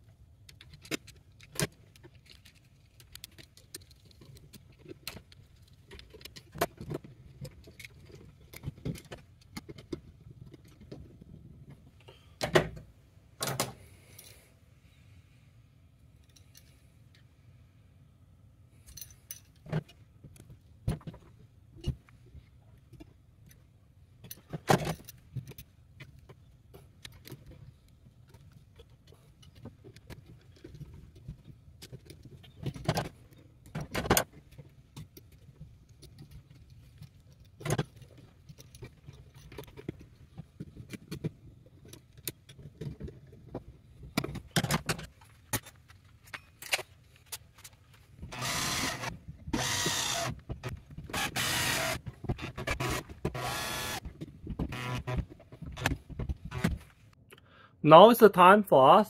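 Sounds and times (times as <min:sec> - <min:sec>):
screwdriver scraping screws: 0:46.4 - 0:56.8.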